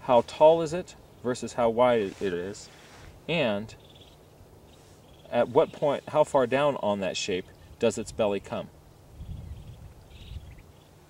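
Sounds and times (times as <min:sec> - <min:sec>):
faint high-pitched chirping: 0:03.7 - 0:06.3, 0:09.2 - 0:11.0.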